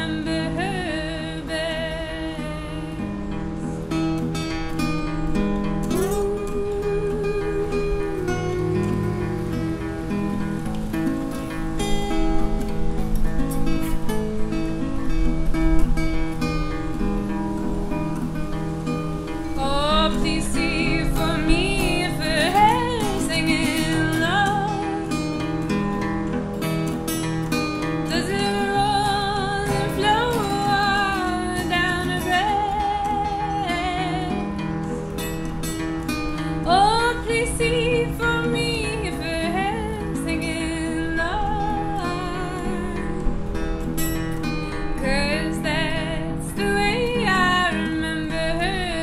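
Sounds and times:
wordless female vocal: 0.0s - 3.3s, 6.0s - 9.4s, 19.6s - 25.2s, 28.1s - 34.6s, 36.5s - 43.3s, 45.0s - 49.0s
acoustic guitar folk accompaniment: 0.0s - 49.0s.

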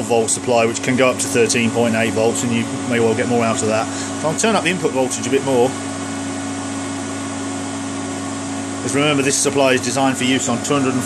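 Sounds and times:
cooling fans whirring: 0.0s - 11.0s
low electrical hum: 0.0s - 11.0s.

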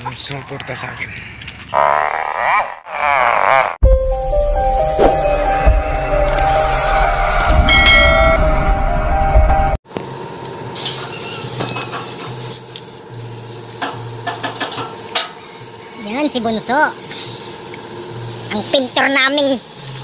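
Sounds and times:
intro music: 3.8s - 9.8s
paint spray gun hissing: 10.8s - 20.0s.

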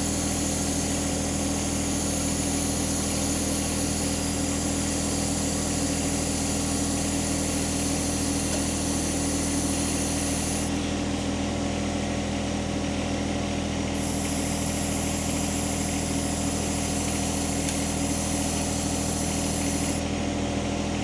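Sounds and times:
tractor engine running: 0.0s - 21.0s.

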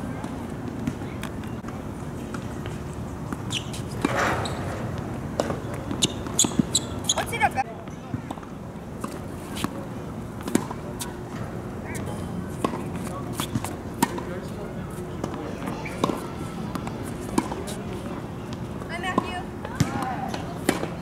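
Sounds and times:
faint voices: 0.0s - 21.0s
tennis balls bouncing on hard court: 0.2s - 9.8s, 10.4s - 14.6s, 15.2s - 21.0s
tennis balls struck by rackets: 0.2s - 21.0s.

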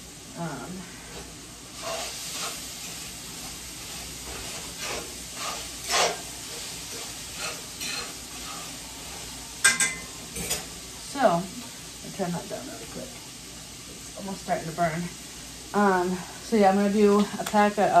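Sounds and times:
meat sizzling in a skillet: 0.0s - 18.0s
utensil scraping a skillet: 0.8s - 10.8s.

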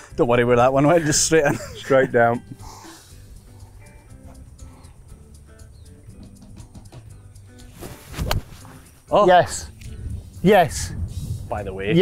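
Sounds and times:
soft background music: 0.0s - 12.0s
golf club hitting ball: 7.8s - 8.9s.

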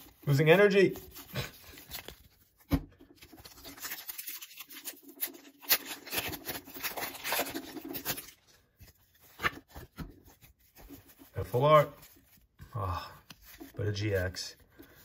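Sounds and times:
foil wrapper crinkling and tearing: 3.2s - 9.6s.

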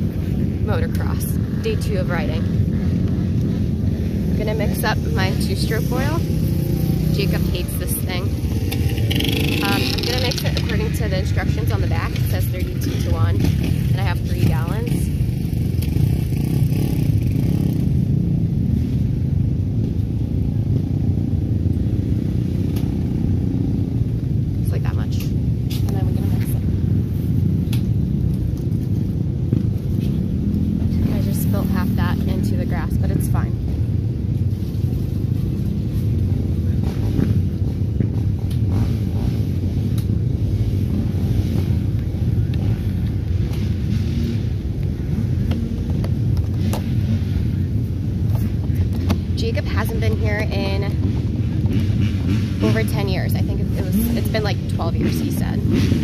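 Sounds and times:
low rumble: 0.0s - 56.0s.

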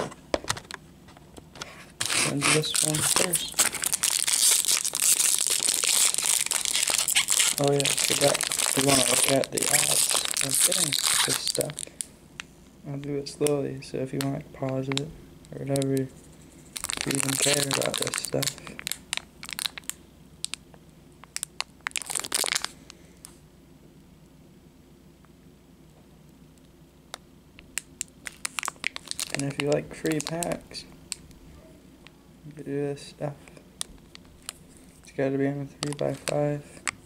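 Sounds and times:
foil wrapper crinkling: 2.0s - 12.1s, 16.7s - 20.0s, 21.3s - 22.8s, 27.7s - 30.8s, 35.8s - 37.0s.

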